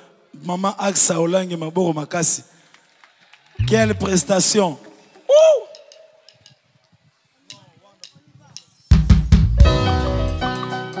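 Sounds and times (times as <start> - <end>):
person whooping through loudspeakers: 5.3 - 5.9.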